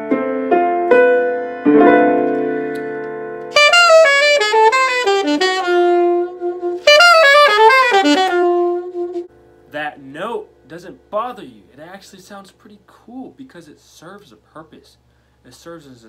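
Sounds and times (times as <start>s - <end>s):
piano chords ringing: 0.0s - 6.7s
alto saxophone jazz line: 3.4s - 9.4s.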